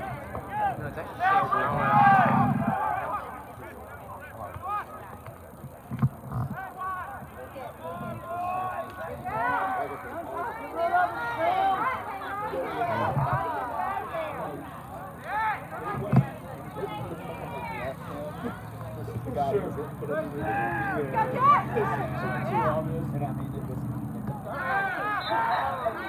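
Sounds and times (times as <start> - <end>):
overlapping voices calling: 0.0 - 26.0.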